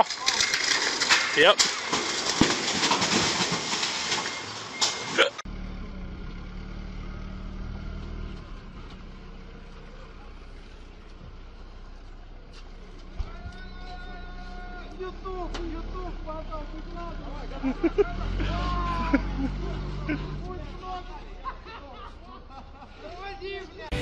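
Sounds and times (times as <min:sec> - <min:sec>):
engine humming: 0:00.0 - 0:24.0.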